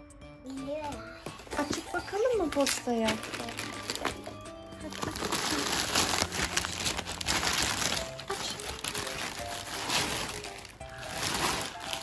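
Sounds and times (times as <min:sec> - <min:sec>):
quiet background music: 0:00.0 - 0:12.0
plastic bag crinkling: 0:01.4 - 0:12.0.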